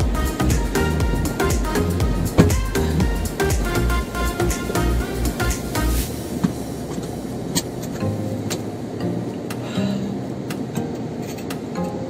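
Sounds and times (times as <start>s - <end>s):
rushing car interior noise: 0.0s - 8.8s.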